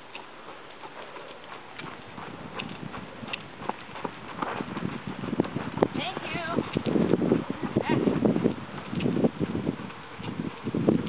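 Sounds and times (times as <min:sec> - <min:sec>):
horse hoofbeats on gravel: 0:00.0 - 0:11.0.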